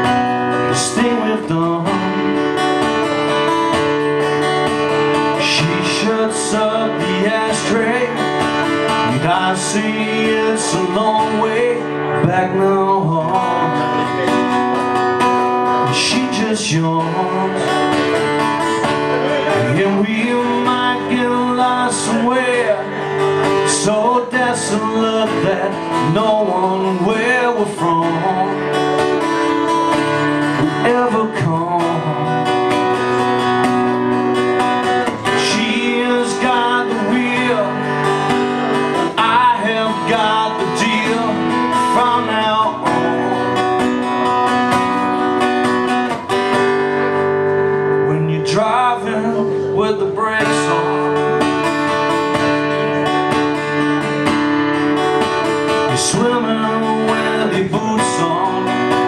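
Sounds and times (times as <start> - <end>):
man singing: 0.0 - 46.6, 47.9 - 59.0
acoustic guitar playing chords: 0.0 - 59.0.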